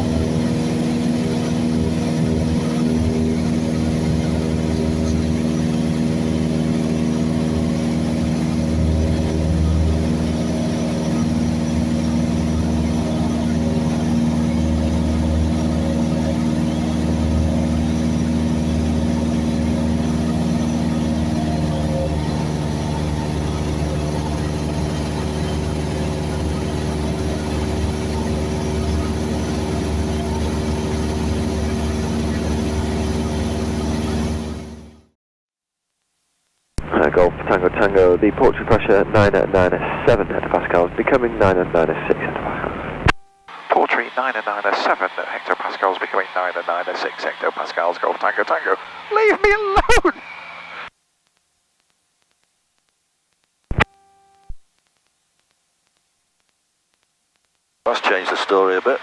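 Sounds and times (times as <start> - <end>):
light aircraft engine droning: 0.0 - 35.1, 36.8 - 50.9, 57.9 - 59.0.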